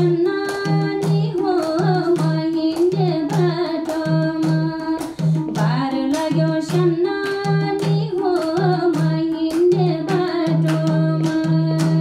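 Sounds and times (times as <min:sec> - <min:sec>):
woman singing into microphone: 0:00.0 - 0:12.0.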